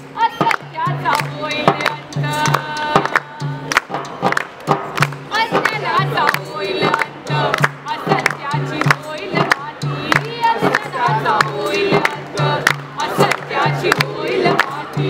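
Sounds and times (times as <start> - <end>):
woman singing: 0.0 - 3.8, 5.3 - 15.0
frame drum beat: 0.4 - 15.0.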